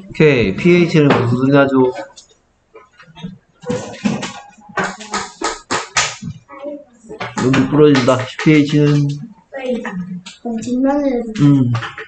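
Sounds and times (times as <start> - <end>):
person speaking: 0.0 - 5.5, 6.2 - 12.0.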